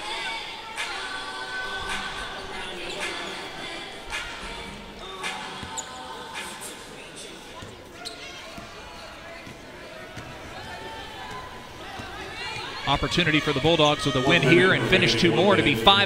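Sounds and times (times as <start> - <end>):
murmur of arena crowd: 0.0 - 16.0.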